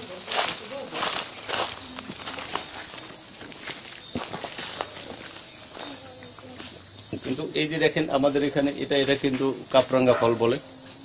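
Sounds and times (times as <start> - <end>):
footsteps on sandy earth: 0.0 - 7.4
high-pitched insect chorus: 0.0 - 11.0.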